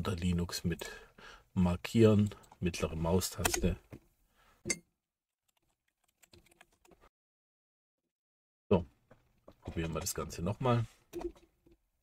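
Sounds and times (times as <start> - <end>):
faint keyboard typing: 5.5 - 7.0.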